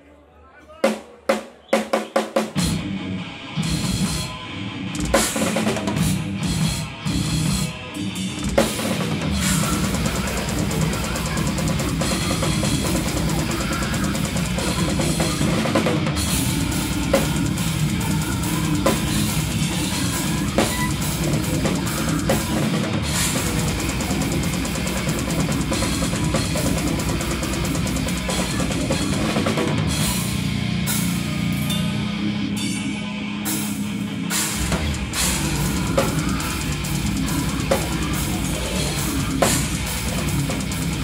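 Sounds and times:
death metal band playing: 2.0 - 41.0
fast double-bass kick drum: 9.5 - 29.8.

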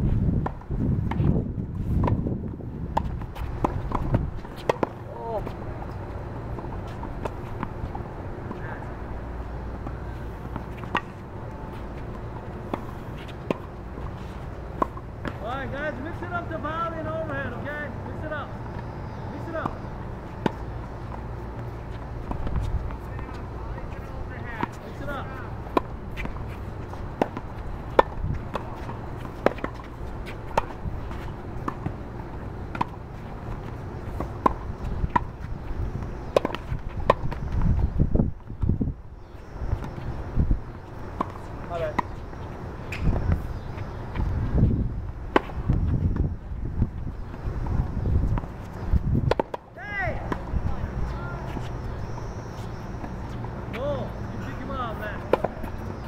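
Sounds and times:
tennis balls struck with rackets: 2.9 - 5.9, 9.7 - 14.1, 20.4 - 37.5, 40.8 - 44.3, 45.3 - 46.3, 47.2 - 56.0.

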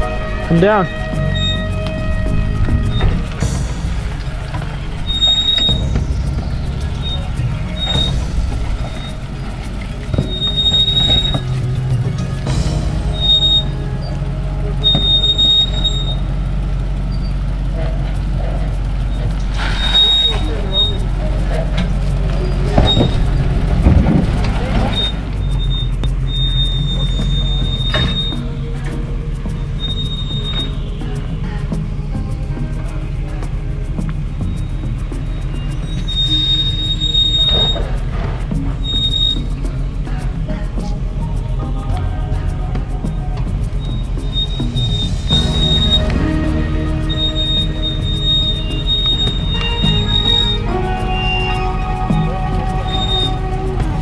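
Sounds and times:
short high-pitched squeals: 0.0 - 23.7, 24.3 - 31.6, 34.4 - 40.2, 43.0 - 54.0
truck engine running low: 0.0 - 54.0
truck knocking on rocks: 1.2 - 13.8, 21.0 - 26.3.

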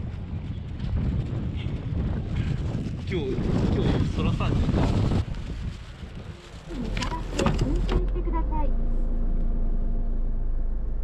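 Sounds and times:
wind buffeting microphone: 0.0 - 8.4.

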